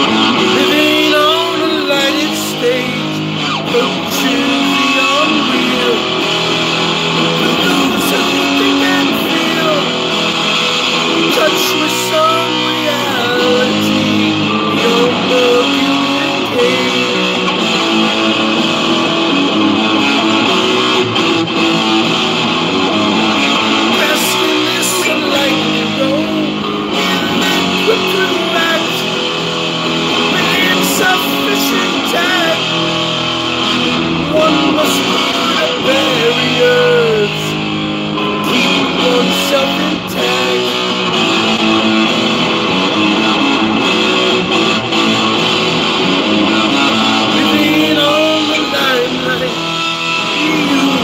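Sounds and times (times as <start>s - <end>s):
electric guitar strumming chords: 0.0s - 51.0s.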